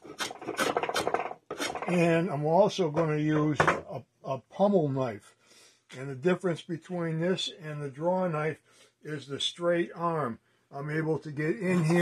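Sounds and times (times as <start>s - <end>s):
draw knife scraping wood: 0.0s - 1.9s.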